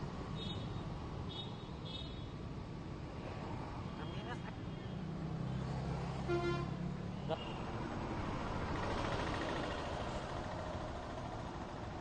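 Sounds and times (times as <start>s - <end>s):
passing traffic noise: 0.0s - 12.0s
motorcycle engines passing: 3.3s - 12.0s
vehicle horn toot: 6.3s - 6.7s.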